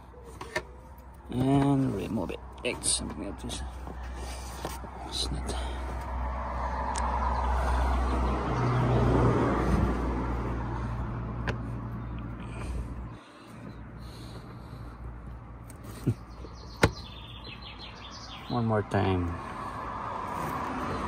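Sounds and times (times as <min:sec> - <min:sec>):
vehicle engine humming: 0:00.0 - 0:21.0.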